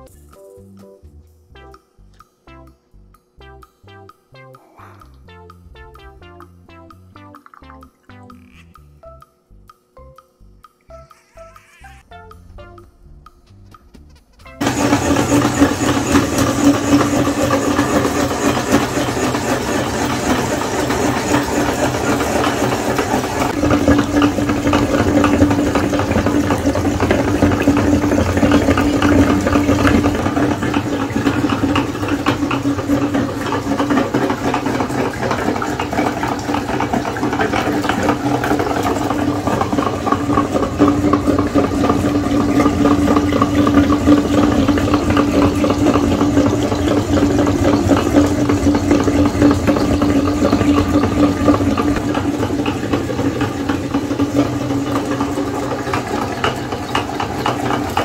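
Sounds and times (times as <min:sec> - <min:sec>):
motor humming and rattling: 0:10.9 - 0:58.0.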